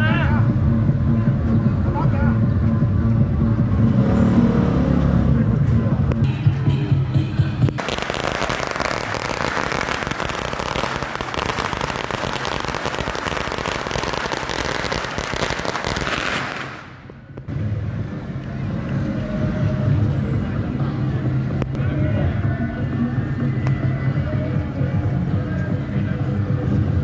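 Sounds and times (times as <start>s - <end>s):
firecrackers crackling: 7.6s - 17.6s.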